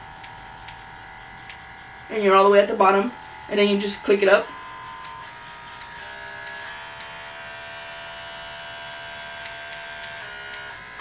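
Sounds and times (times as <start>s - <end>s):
pet clipper motor buzzing: 0.0s - 11.0s.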